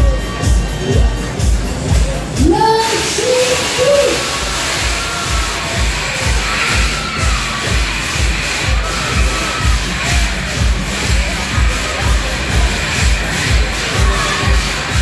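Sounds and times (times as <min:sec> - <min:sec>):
loud dance music: 0:00.0 - 0:15.0
riders shouting and screaming: 0:02.4 - 0:15.0.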